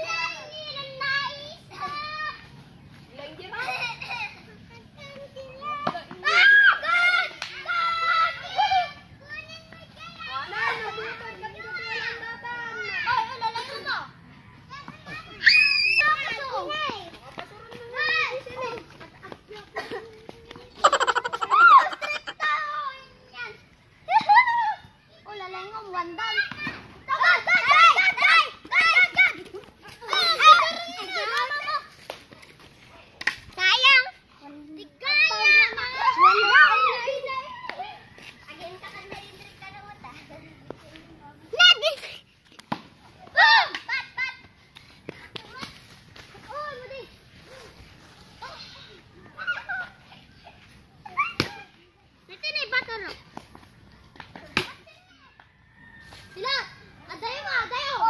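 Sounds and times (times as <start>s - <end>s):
children calling and chattering: 0.0s - 58.0s.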